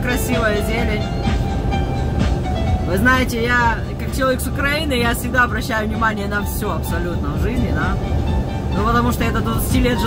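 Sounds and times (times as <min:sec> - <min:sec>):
faint music: 0:00.0 - 0:10.0
truck engine and road rumble: 0:00.0 - 0:10.0.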